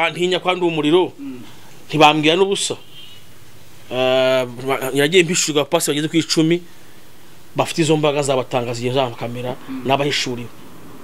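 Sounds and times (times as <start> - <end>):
man speaking: 0.0 - 2.9, 3.9 - 6.7, 7.5 - 10.6.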